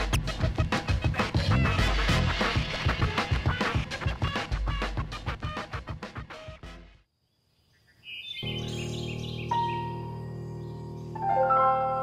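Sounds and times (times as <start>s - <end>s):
birds chirping: 7.2s - 12.0s
sustained background music chord: 8.5s - 12.0s.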